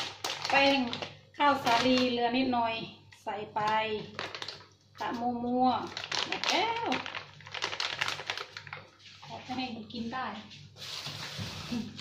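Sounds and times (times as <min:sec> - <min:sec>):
plastic bag crinkling: 0:00.0 - 0:02.5, 0:03.7 - 0:09.7.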